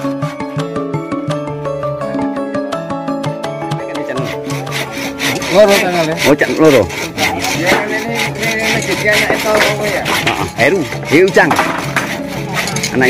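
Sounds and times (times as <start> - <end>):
handsaw cutting wood: 0.0 - 0.7, 3.8 - 13.0.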